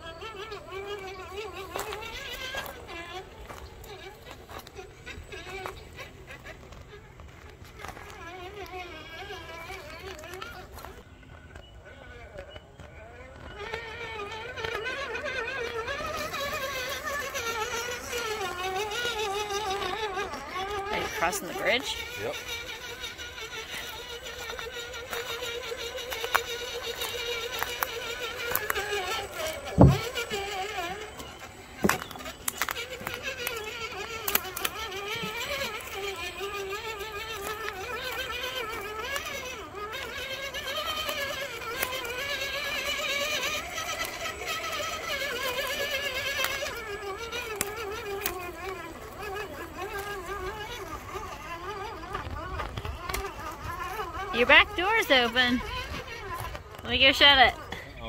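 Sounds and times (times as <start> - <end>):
rc car motor and gear whine: 0.0 - 58.0.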